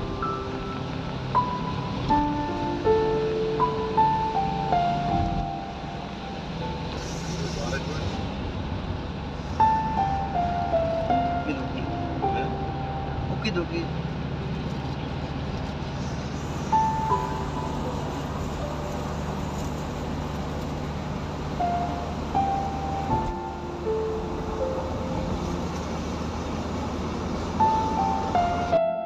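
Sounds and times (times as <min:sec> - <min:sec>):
slow melody of held notes: 0:00.0 - 0:08.4, 0:09.5 - 0:15.3, 0:16.6 - 0:29.0
car engine hum: 0:00.0 - 0:29.0
road noise: 0:00.0 - 0:29.0.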